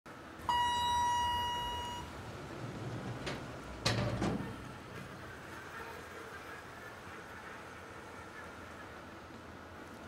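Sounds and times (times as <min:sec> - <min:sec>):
elevator arrival chime: 0:00.4 - 0:03.4.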